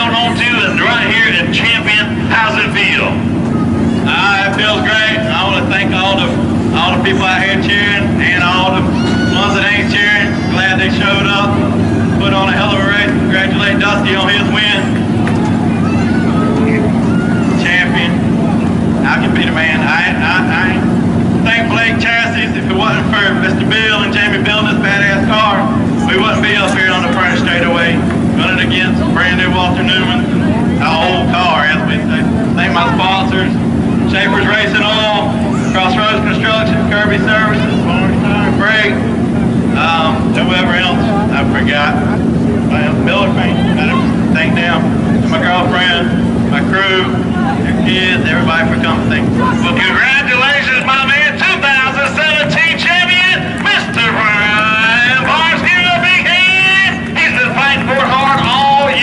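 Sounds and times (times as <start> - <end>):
low engine drone: 0.0 - 59.0
people talking indistinctly: 0.0 - 59.0.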